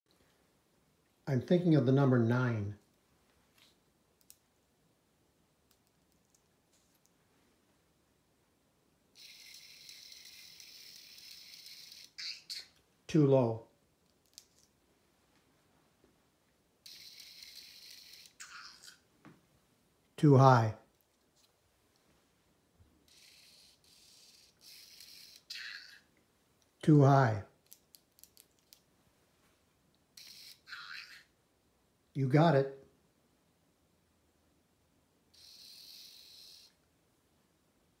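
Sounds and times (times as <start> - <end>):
small robot motors whirring: 9.2 - 12.2, 16.9 - 18.9, 23.1 - 25.9, 35.4 - 36.7.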